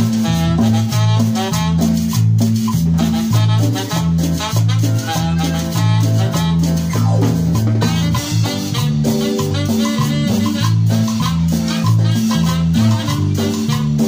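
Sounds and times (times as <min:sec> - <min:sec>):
drum kit: 0:00.0 - 0:14.0
electric bass line: 0:00.0 - 0:14.0
keyboard melody: 0:00.0 - 0:14.0
metal guira scraping: 0:00.0 - 0:14.0.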